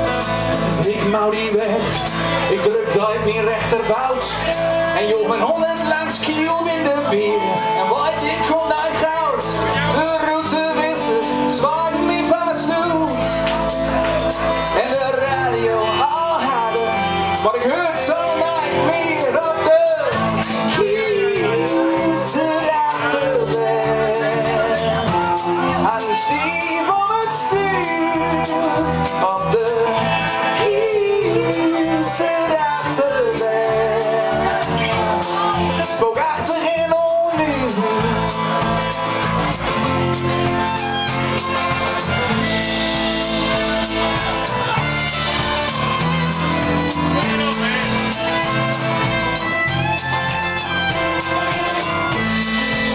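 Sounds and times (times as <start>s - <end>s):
fiddle: 0.0s - 52.9s
folk-rock band playing: 0.0s - 52.9s
person singing: 0.0s - 52.9s
sliding melody line: 0.0s - 52.9s
strummed acoustic guitar: 0.0s - 52.9s.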